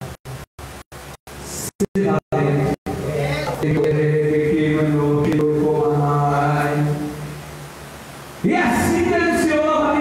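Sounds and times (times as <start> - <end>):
man chanting through microphone: 1.6 - 7.4, 8.4 - 10.0.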